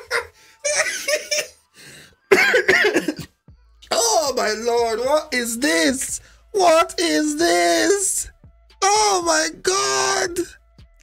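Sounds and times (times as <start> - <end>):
man laughing hard: 0.0 - 1.7, 2.3 - 3.3.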